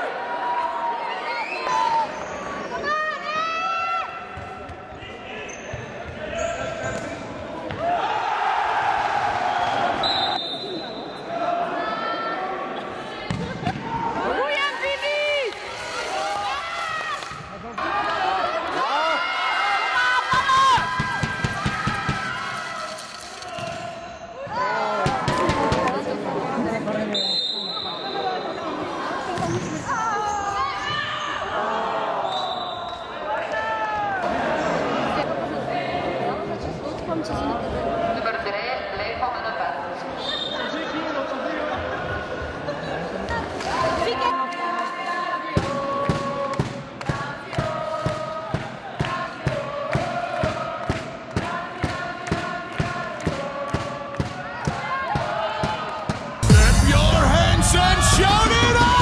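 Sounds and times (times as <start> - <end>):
people shouting in echoing hall: 7.5 - 26.1, 43.7 - 59.0.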